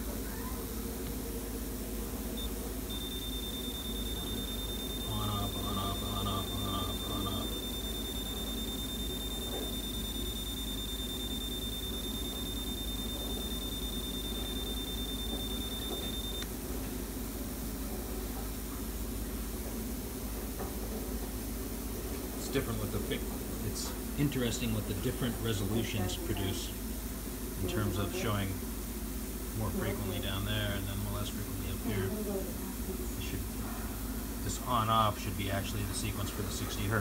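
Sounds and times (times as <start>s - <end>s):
electrical hum: 0.0s - 37.0s
high-pitched whine: 2.1s - 16.5s
beeping pulses: 2.4s - 16.5s.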